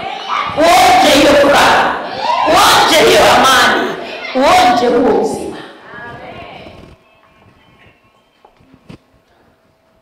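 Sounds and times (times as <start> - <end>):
crowd of voices: 0.0 - 9.0
woman shouting into a microphone: 0.6 - 5.6.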